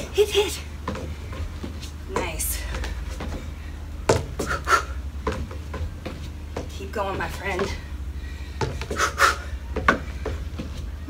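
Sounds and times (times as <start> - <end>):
steady low hum: 0.0 - 11.0
sneakers scuffing on wooden deck: 0.8 - 3.5, 4.1 - 7.9, 8.6 - 10.9.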